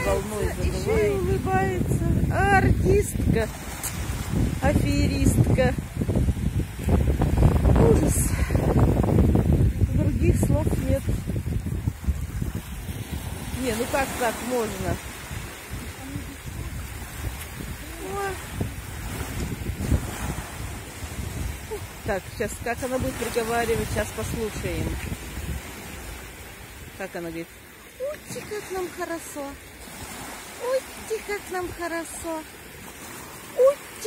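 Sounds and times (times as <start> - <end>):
wind buffeting microphone: 0.0 - 27.0
small waves breaking: 0.0 - 34.0.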